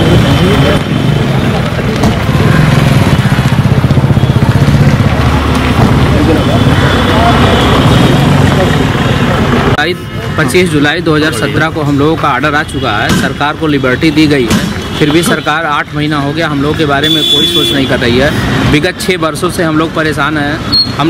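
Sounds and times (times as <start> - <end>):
indistinct crowd talk: 0.0 - 16.9.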